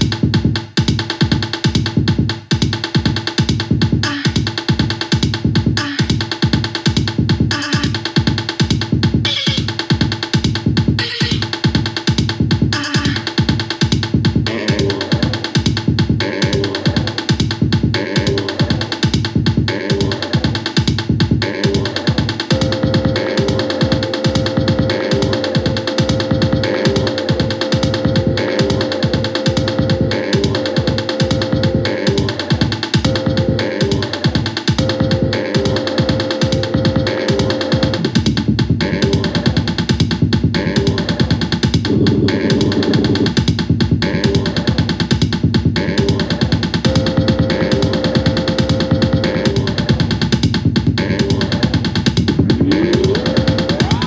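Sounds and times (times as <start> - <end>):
looped electronic pattern: 0.0 - 54.0
bass hits falling in pitch: 22.5 - 34.2
held synth tone: 22.5 - 38.1, 46.9 - 49.6, 52.6 - 54.0.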